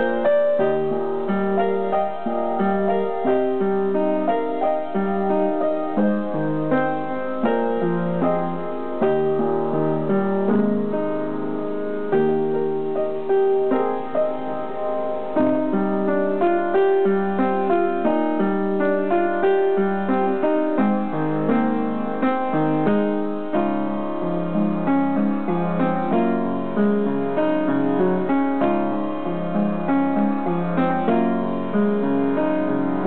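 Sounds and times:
upright piano playing: 0.0s - 33.0s.

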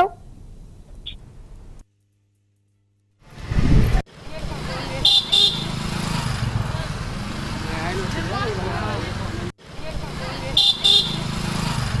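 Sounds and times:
vehicle engine running: 3.2s - 12.0s.

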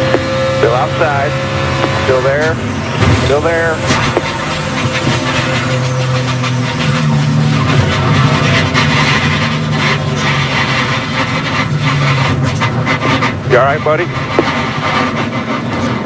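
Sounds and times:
race car engine running: 0.0s - 16.0s
rushing noise: 0.0s - 16.0s.

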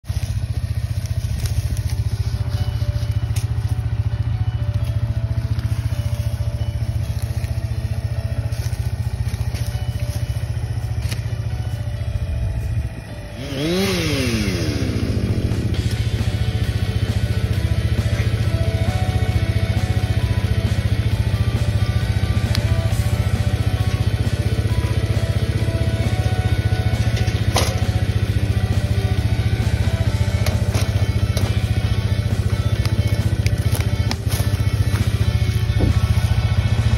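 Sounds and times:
chainsaw cutting log: 13.3s - 16.6s, 28.7s - 36.1s.

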